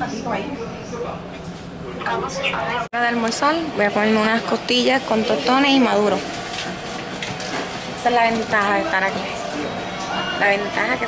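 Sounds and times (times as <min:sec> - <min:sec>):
restaurant background hum and hiss: 0:00.0 - 0:11.0
woman's voice: 0:02.9 - 0:06.3, 0:08.0 - 0:09.4.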